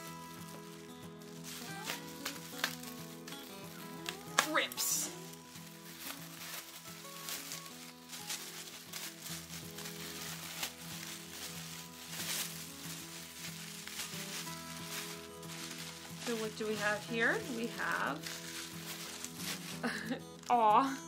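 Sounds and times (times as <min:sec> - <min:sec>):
plastic packaging crinkling: 0:00.0 - 0:20.9
soft background music: 0:00.0 - 0:21.0.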